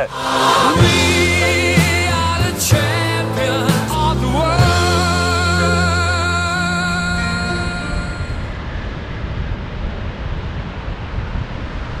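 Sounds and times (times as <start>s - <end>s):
ocean surf breaking: 0.0s - 3.9s
wind on microphone: 7.4s - 12.0s.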